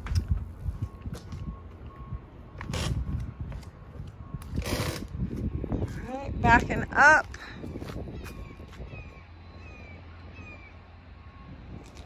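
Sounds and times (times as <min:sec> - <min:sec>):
faint repeating beep: 0:00.8 - 0:03.4.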